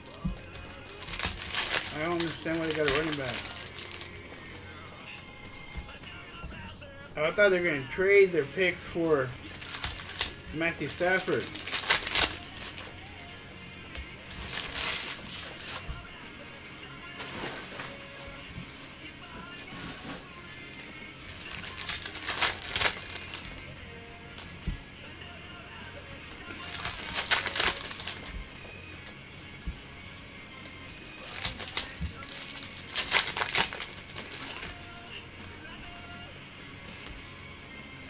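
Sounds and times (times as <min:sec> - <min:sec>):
foil wrappers crinkling: 0:00.0 - 0:06.7, 0:07.3 - 0:13.3, 0:14.3 - 0:23.7, 0:26.3 - 0:29.8, 0:30.6 - 0:36.1
quiet background music: 0:00.0 - 0:38.0.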